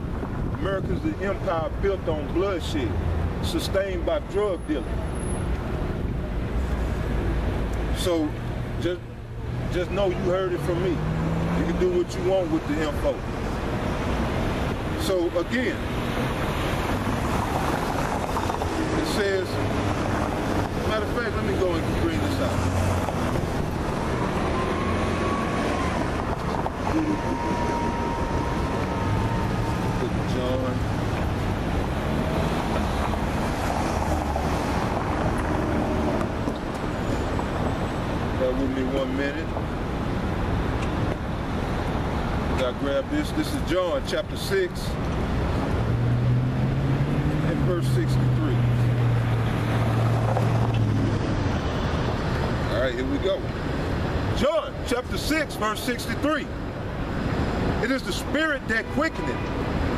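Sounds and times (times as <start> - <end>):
traffic rumble: 0.0 - 59.9.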